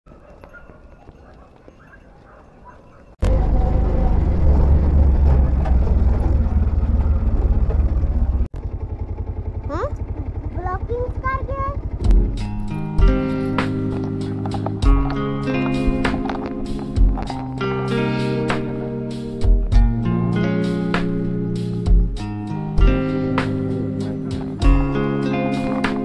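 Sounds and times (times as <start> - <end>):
motorcycle engine while riding: 3.2 - 26.0
motorcycle engine idling: 3.3 - 17.5.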